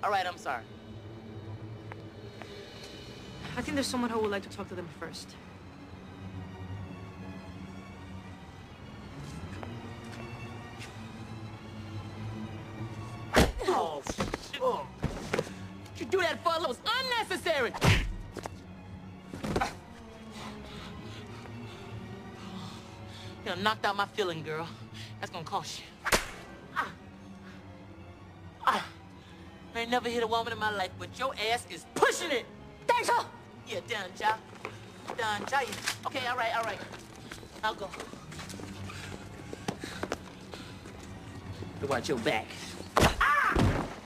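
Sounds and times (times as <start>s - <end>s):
low music underscore: 0.0s - 44.0s
footsteps on pavement: 1.8s - 2.9s, 9.1s - 11.0s, 34.4s - 41.7s.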